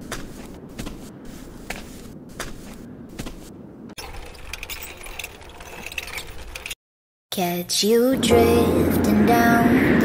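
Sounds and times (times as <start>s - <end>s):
low mechanical hum: 7.4s - 10.0s.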